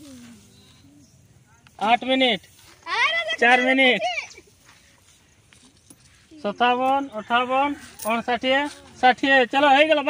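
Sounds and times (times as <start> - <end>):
faint outdoor background: 0.0 - 10.0.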